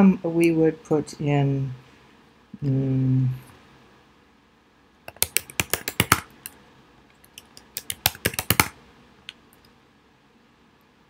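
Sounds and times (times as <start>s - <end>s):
typing on a computer keyboard: 5.1s - 6.6s, 7.2s - 8.8s.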